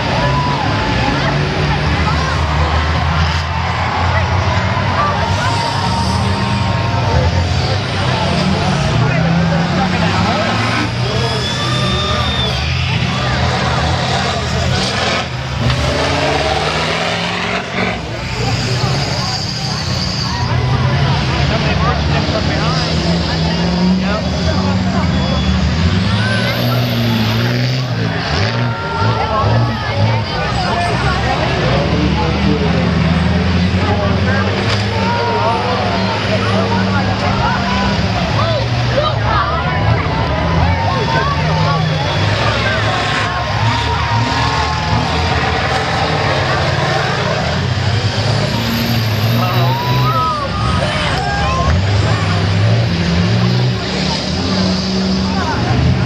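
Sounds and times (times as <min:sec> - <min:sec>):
bus engines revving: 0:00.0 - 0:56.0
crowd voices: 0:00.0 - 0:56.0.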